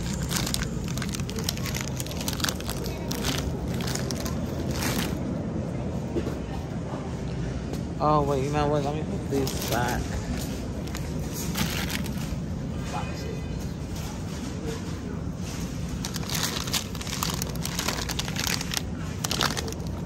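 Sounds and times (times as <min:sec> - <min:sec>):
mesh bags crackling: 0:00.0 - 0:05.3, 0:09.4 - 0:12.4, 0:15.6 - 0:20.0.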